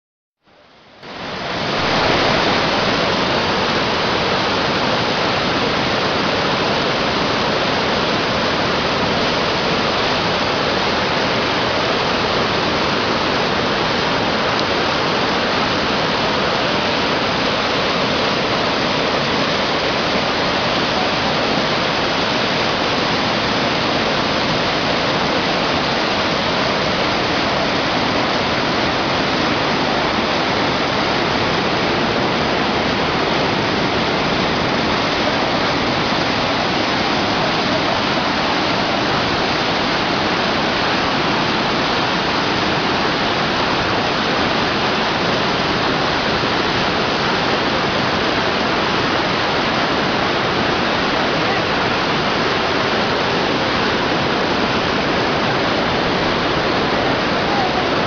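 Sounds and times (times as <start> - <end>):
river in flood roaring: 0.4 - 58.0.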